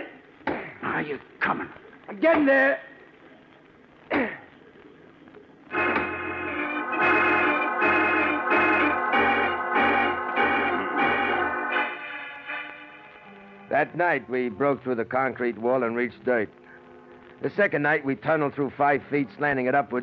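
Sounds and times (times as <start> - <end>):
organ chords: 4.0 - 20.0.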